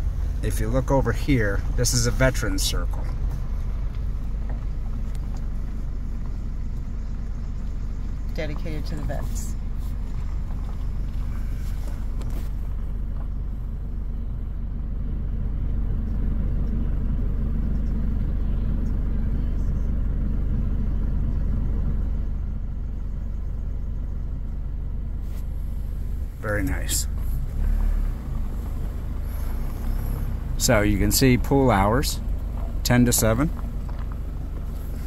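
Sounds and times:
car engine and tyres rumbling: 0:00.0 - 0:35.0.

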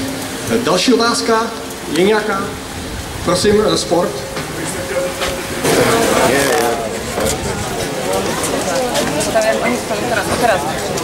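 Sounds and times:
crowd of overlapping voices: 0:00.0 - 0:11.0.

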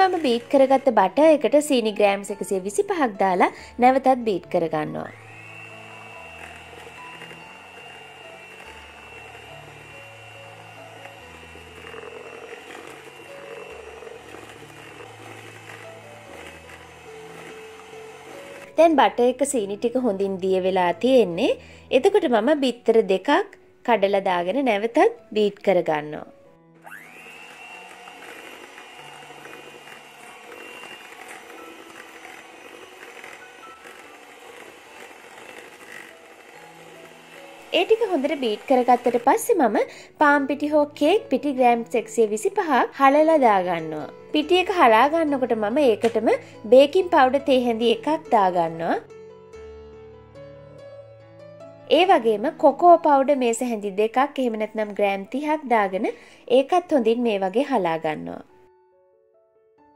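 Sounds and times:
electric hand mixer whining: 0:00.0 - 0:22.2, 0:26.7 - 0:50.8
soft background music: 0:00.0 - 0:59.9.

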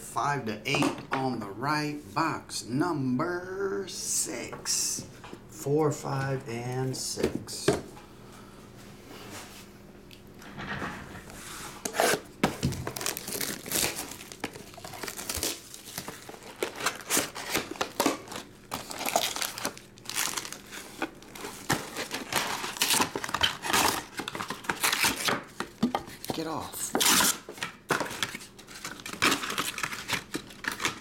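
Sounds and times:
plastic wrap crinkling and tearing: 0:11.9 - 0:25.5, 0:26.1 - 0:31.0.

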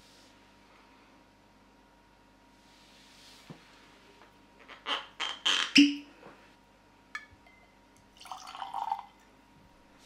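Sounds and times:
cork squeaking in bottle neck: 0:04.7 - 0:06.0
cork popping: 0:08.2 - 0:09.2.

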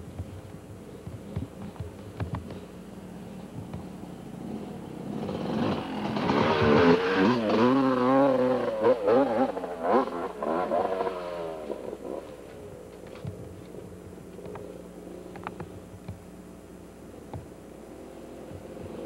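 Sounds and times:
dirt bike engine revving: 0:04.4 - 0:12.4.

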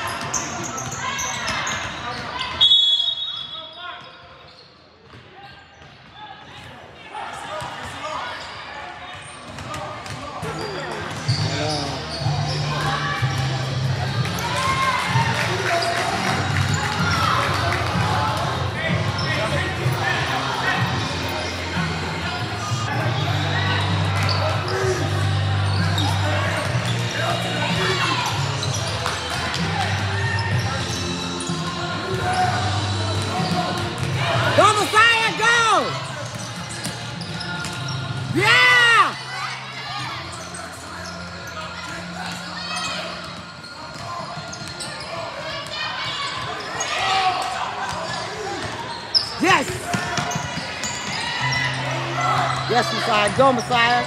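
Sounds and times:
spectators chattering and calling out: 0:00.0 - 0:54.0.

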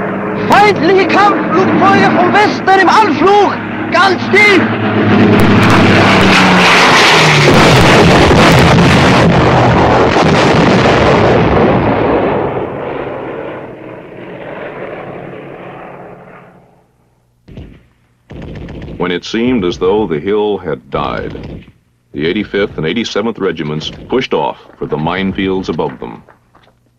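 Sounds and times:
propeller plane engine drone: 0:00.0 - 0:26.9
explosions: 0:05.0 - 0:14.7, 0:17.5 - 0:19.0
gunfire: 0:05.3 - 0:12.3, 0:17.5 - 0:19.1, 0:21.2 - 0:21.8, 0:23.8 - 0:24.9.

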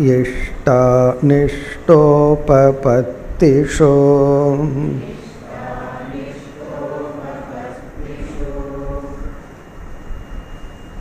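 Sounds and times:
man chanting verse: 0:00.0 - 0:09.3.

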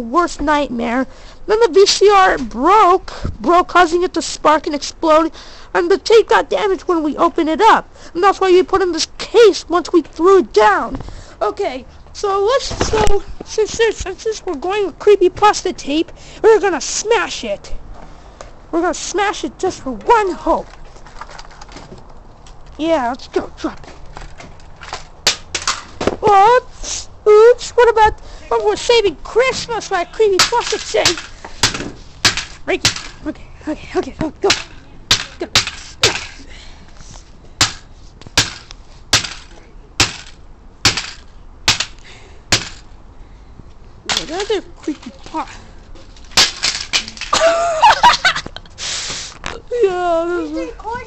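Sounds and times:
plastic pieces clattering: 0:46.1 - 0:47.5
high-pitched laughing cry: 0:47.3 - 0:48.8.

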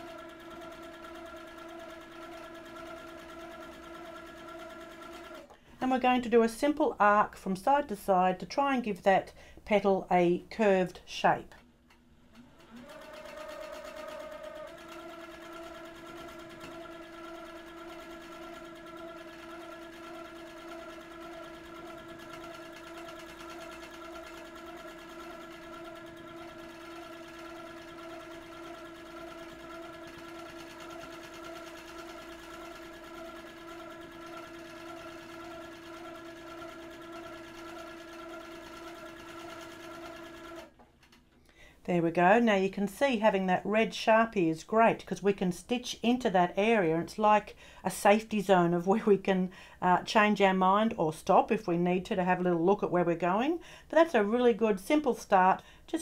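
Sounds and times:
sewing machine stitching hum: 0:00.0 - 0:05.6, 0:12.2 - 0:41.2.

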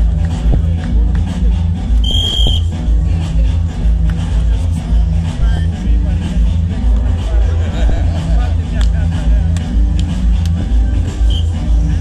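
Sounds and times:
music with heavy bass beat: 0:00.0 - 0:12.0
referee's whistle blast: 0:02.0 - 0:02.7, 0:11.3 - 0:11.6.

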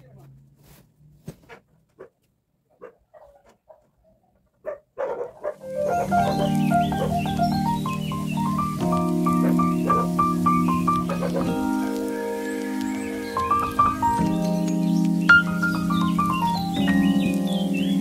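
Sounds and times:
mellow instrumental music: 0:05.3 - 0:18.0.

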